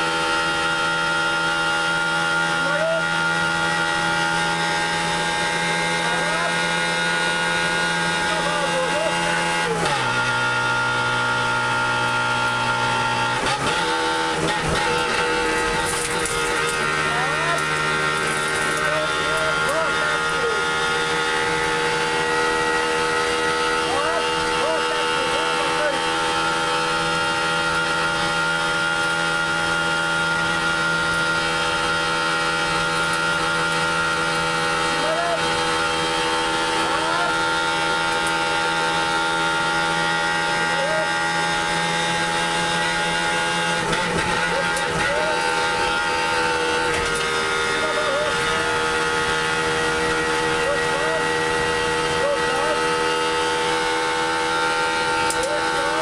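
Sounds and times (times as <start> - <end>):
car engine revving high: 0.0 - 56.0
tyre and road noise: 0.0 - 56.0.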